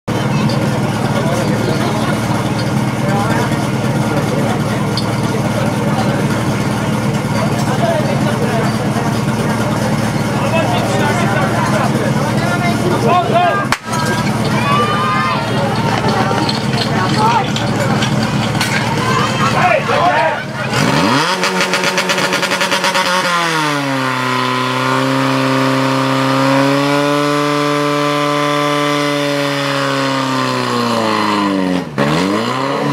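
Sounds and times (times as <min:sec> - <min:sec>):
pump engine revving: 0:00.1 - 0:32.9
spectators shouting: 0:07.9 - 0:21.6.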